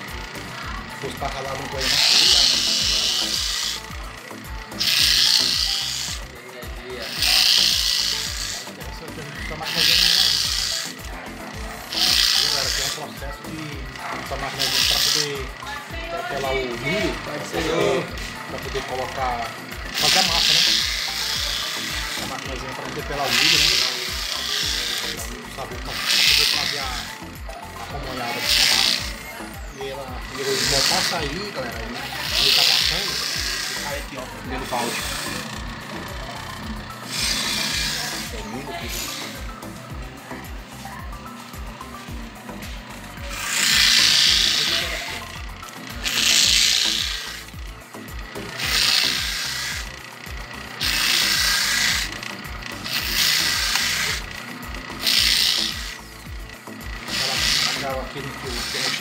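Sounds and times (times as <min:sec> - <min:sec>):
electric grater scraping corn: 0:00.0 - 0:59.0.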